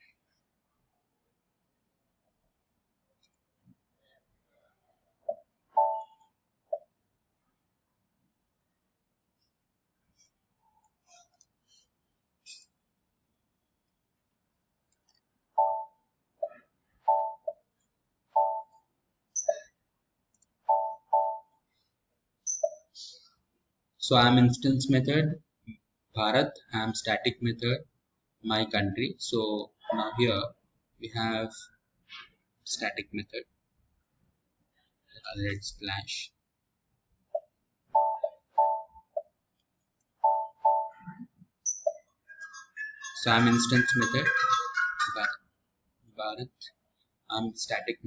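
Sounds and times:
electronic alert beeps: 5.8s - 6.2s, 17.1s - 17.6s, 38.0s - 39.0s, 40.2s - 42.0s.

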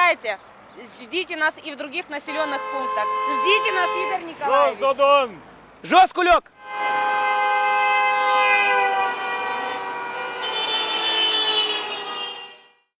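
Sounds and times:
car horn honking: 2.0s - 4.7s, 6.6s - 13.0s
higher horn tone: 2.2s - 4.5s, 6.6s - 12.9s.

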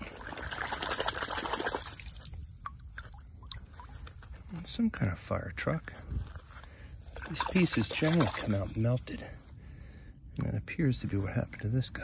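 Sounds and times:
water dripping: 0.0s - 4.6s
water sloshing and splashing: 0.0s - 4.8s, 6.2s - 9.0s.

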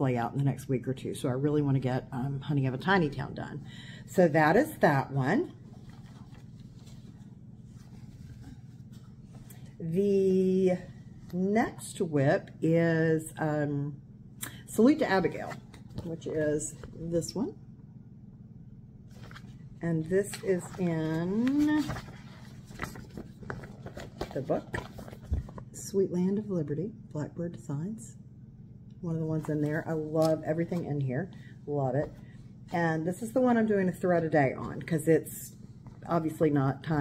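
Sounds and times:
steady low hum: 0.0s - 37.0s
fabric rustling: 5.4s - 9.8s, 19.1s - 25.8s.

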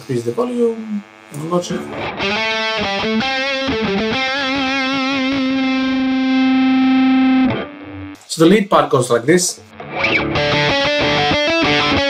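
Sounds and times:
distorted electric guitar lead: 0.0s - 8.3s, 9.6s - 12.0s.

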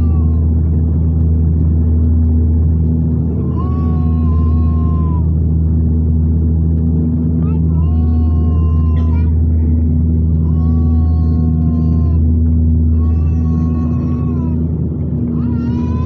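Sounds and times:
turboprop engines droning: 0.0s - 16.0s.

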